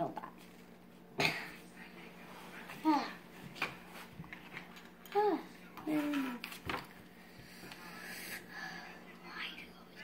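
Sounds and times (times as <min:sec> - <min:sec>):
child coughing: 0:01.2 - 0:01.5.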